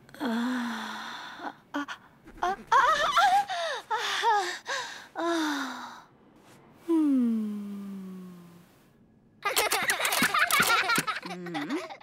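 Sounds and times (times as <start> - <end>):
woman moaning and gasping: 0.1 - 6.1, 6.9 - 8.5.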